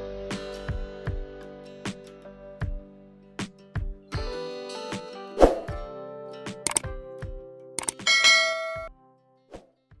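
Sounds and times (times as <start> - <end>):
short click: 6.7 - 6.9, 7.8 - 8.0
bright bell chime: 8.1 - 8.9.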